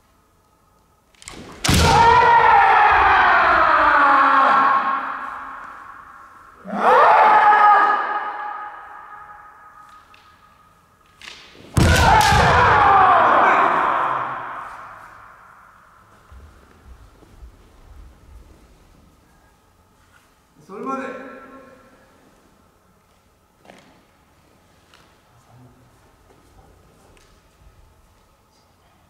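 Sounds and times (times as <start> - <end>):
long drawn-out shouts: 1.7 - 10.0, 11.8 - 16.0.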